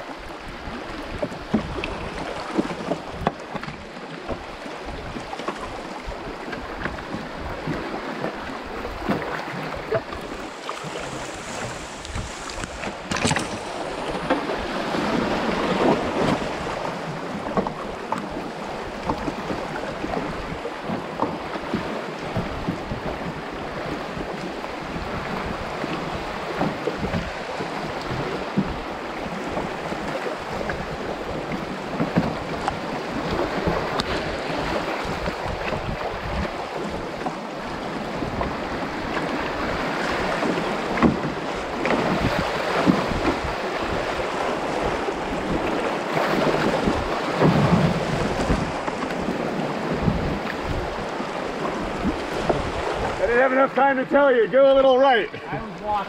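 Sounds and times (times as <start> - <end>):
wind buffeting microphone: 0.0 - 53.5
water splashes: 0.0 - 56.0
river rapids rushing: 7.2 - 36.8.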